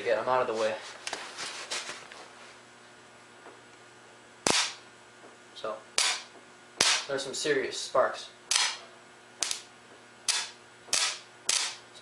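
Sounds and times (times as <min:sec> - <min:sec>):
electrical arcing cracks: 0:04.4 - 0:04.8, 0:06.0 - 0:07.1, 0:08.5 - 0:08.8, 0:09.4 - 0:09.7, 0:10.3 - 0:11.8.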